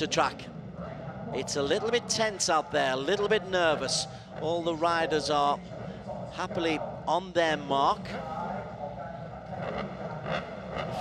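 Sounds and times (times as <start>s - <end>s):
motorcycle engines idling: 7.8s - 11.0s.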